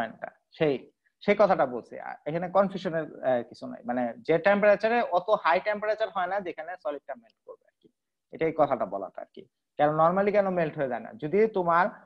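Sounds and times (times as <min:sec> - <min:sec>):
man lecturing: 0:00.0 - 0:12.0.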